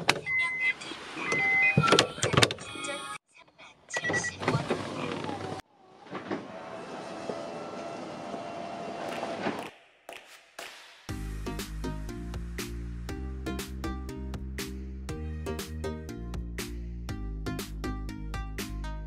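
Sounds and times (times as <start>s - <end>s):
short electronic beeps: 0.2s - 2.0s
electric roof motor humming: 5.8s - 9.5s.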